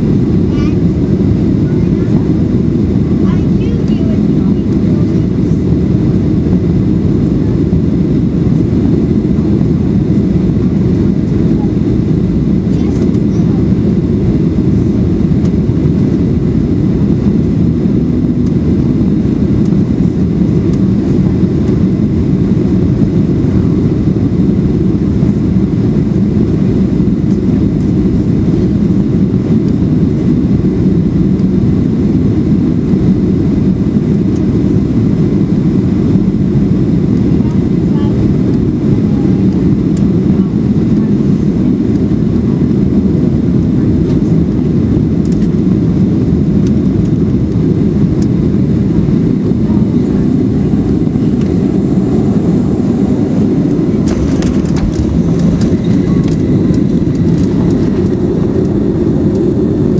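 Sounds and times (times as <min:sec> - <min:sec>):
airplane cabin roar: 0:00.0 - 0:59.9.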